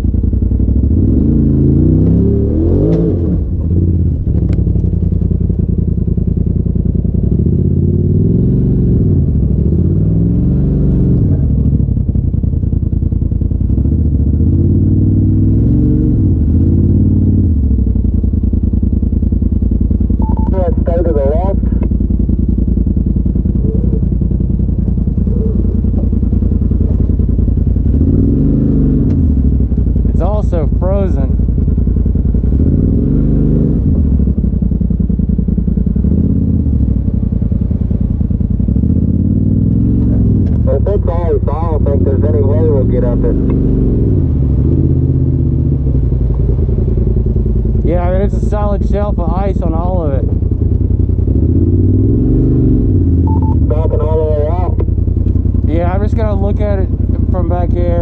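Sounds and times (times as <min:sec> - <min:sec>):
off-road vehicle engine revving: 0:00.0 - 0:58.0
brief voices: 0:23.6 - 0:24.1, 0:53.3 - 0:54.9.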